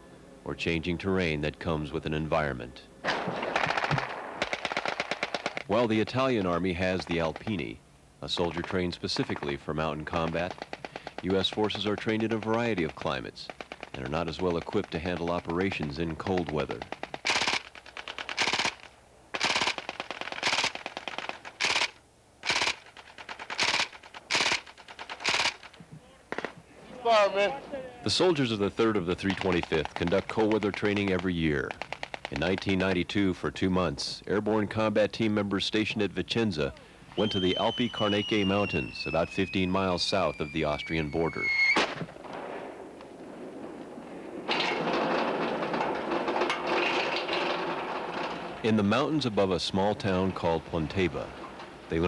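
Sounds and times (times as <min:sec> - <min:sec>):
automatic gunfire bursts: 0:03.1 - 0:05.8, 0:10.1 - 0:15.8, 0:16.7 - 0:25.7.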